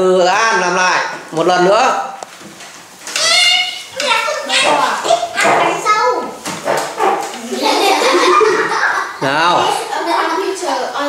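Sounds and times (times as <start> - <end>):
children laughing and talking: 3.1 - 11.0.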